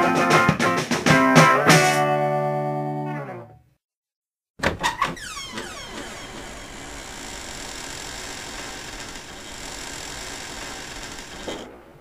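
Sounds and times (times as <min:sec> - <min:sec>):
mechanical drone: 0:05.8 - 0:11.7.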